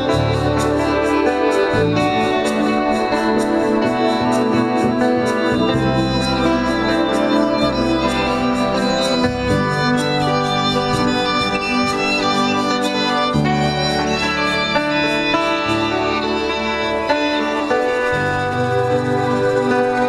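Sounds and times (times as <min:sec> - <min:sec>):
acoustic guitar: 0:00.0 - 0:20.0
fiddle: 0:00.0 - 0:20.0
keyboard: 0:00.0 - 0:20.0.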